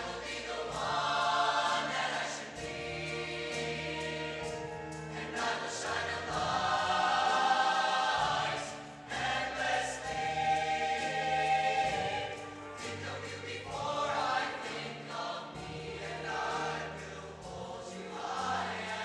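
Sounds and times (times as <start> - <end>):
choir singing long chords: 0.0 - 19.0.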